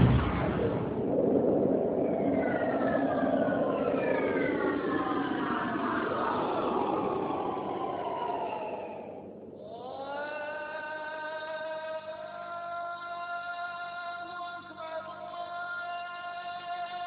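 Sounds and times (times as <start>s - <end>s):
steady rushing sound: 0.0s - 9.6s.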